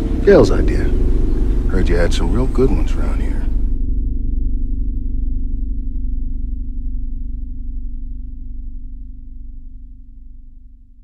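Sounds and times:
deep rumble: 0.0 - 11.0
low musical drone: 0.0 - 11.0.

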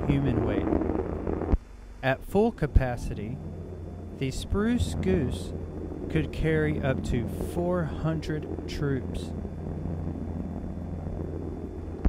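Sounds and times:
recording hiss: 0.0 - 9.4
propeller engine drone: 0.0 - 12.0.

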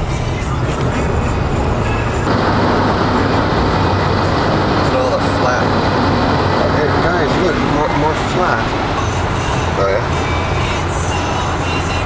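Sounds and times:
vehicle road noise from inside: 0.0 - 12.0.

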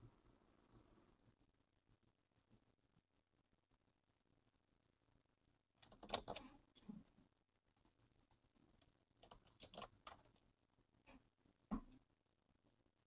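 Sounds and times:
faint keyboard typing: 5.8 - 7.1, 7.7 - 10.5.

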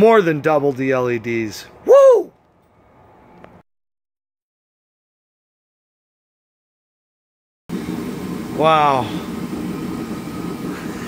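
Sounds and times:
low machine hum: 7.7 - 11.0.

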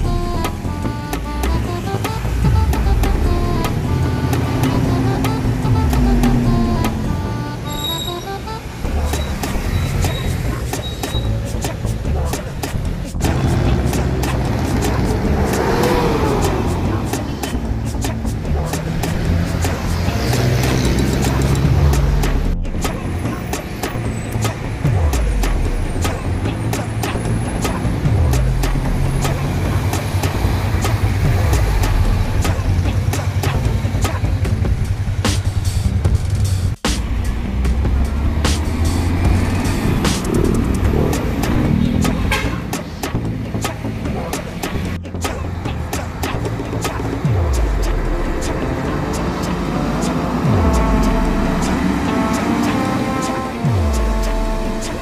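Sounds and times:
background music with bass line: 0.0 - 55.0
vehicles driving past: 0.0 - 55.0.

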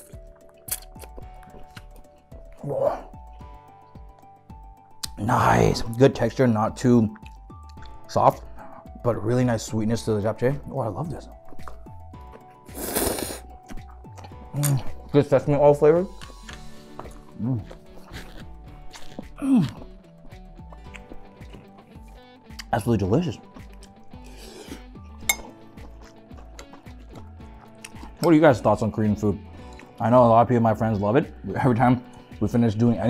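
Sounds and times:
background music: 0.0 - 33.0
slurping noodles: 12.6 - 13.6.

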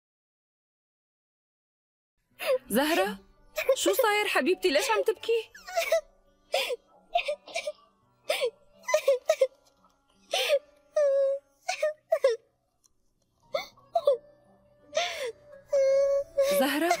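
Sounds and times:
young girl crying: 4.8 - 6.0, 8.3 - 9.6, 10.3 - 12.4, 13.5 - 14.2, 14.9 - 17.0.

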